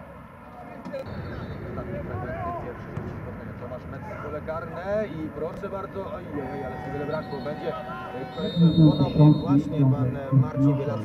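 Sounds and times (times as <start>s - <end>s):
men calling out: 6.3s - 11.0s.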